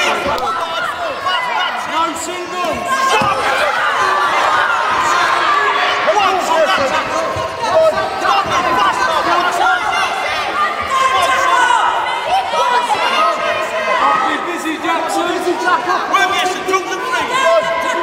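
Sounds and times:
crowd shouting: 0:00.0 - 0:18.0.

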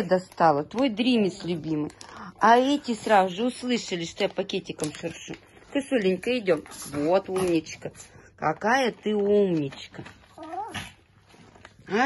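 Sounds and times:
small dog whining: 0:10.3 - 0:11.0.

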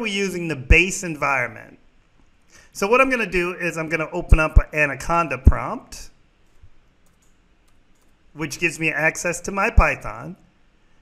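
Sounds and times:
computer keys typing: 0:06.4 - 0:08.3.

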